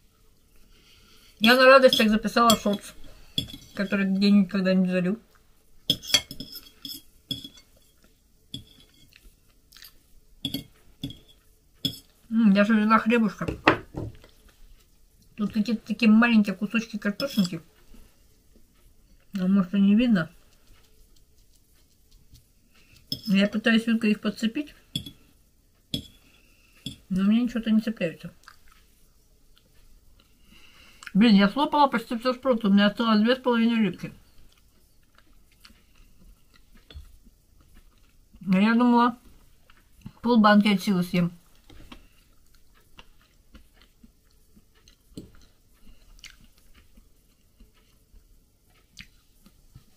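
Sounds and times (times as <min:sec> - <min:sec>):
quiet chewing of food: 0:00.1 - 0:01.4, 0:06.6 - 0:12.3, 0:14.2 - 0:15.5, 0:17.6 - 0:19.5, 0:20.3 - 0:23.2, 0:24.7 - 0:27.1, 0:28.3 - 0:31.2, 0:34.2 - 0:38.6, 0:39.2 - 0:40.2, 0:41.4 - 0:49.9
fork clinking on plate: 0:05.9 - 0:08.0, 0:17.2 - 0:17.6.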